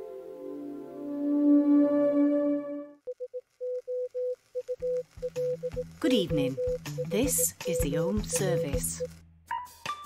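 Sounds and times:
low hum: 0.0 - 9.2
morse code beeps: 3.1 - 9.2.

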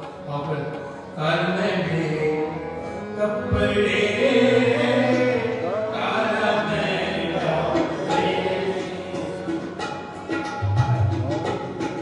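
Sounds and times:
harmonium: 0.0 - 12.0
person singing a hymn: 1.2 - 9.6.

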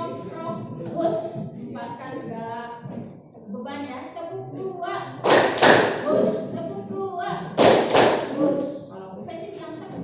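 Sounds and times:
voices chanting a response: 0.0 - 1.6, 4.9 - 9.0
students clapping in unison: 5.2 - 6.3, 7.6 - 8.6.

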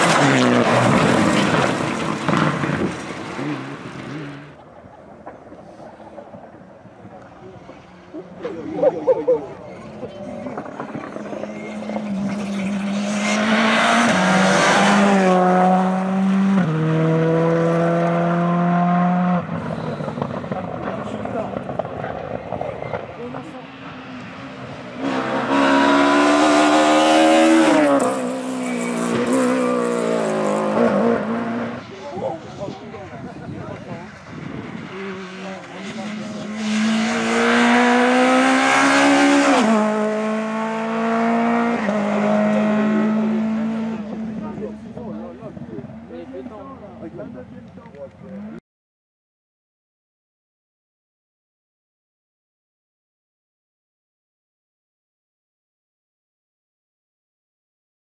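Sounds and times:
rally cars passing at full throttle: 0.0 - 48.6.

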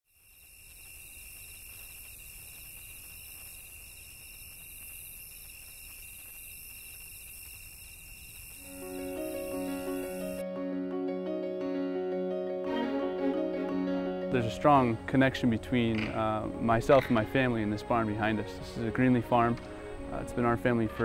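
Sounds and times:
insects trilling: 0.1 - 10.4
pulsed insect call: 0.1 - 10.4
soft piano music: 8.6 - 21.0.

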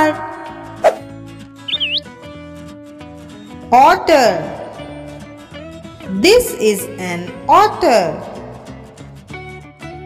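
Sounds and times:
background music with sustained notes: 0.0 - 10.0
high chirp-like whistle: 1.7 - 2.1.

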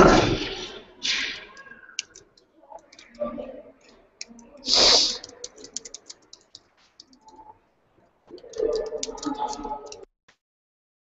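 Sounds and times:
laptop keyboard clicking: 1.5 - 3.2, 4.2 - 7.4, 8.3 - 10.1
loud hissing rush: 4.6 - 6.1.

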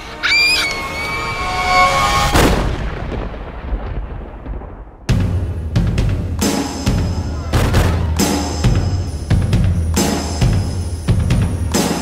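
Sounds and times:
girl screaming: 0.0 - 1.5
trailer music: 0.0 - 2.8, 5.1 - 12.0
loud drums: 5.1 - 12.0.

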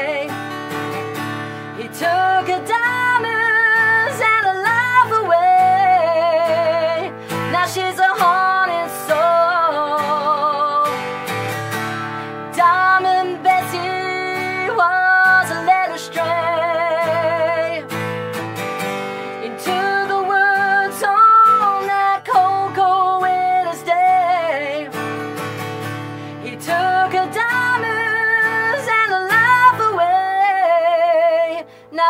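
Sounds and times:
woman singing with vibrato: 0.0 - 0.4, 1.6 - 11.6, 12.4 - 18.0, 19.2 - 25.1, 26.2 - 32.0
acoustic guitars strummed: 0.0 - 32.0.

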